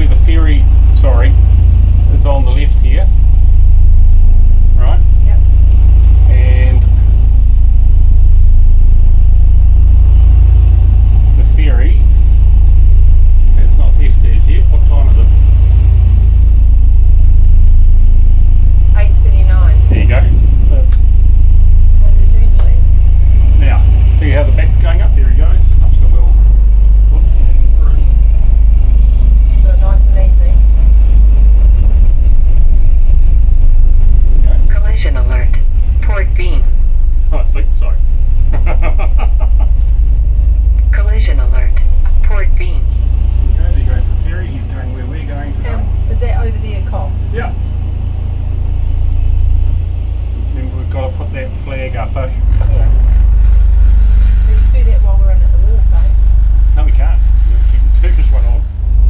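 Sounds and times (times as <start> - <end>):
diesel engine rumble: 0.0 - 59.0
voices: 0.0 - 59.0.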